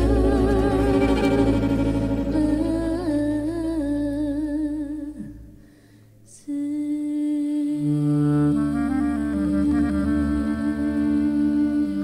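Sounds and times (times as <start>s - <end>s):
low sustained bass note: 0.0s - 5.2s
woman singing a long note: 0.0s - 5.2s, 6.5s - 12.0s.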